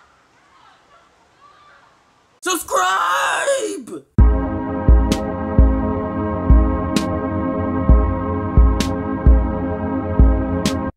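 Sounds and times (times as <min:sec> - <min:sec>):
person yelling: 0:02.4 - 0:04.2.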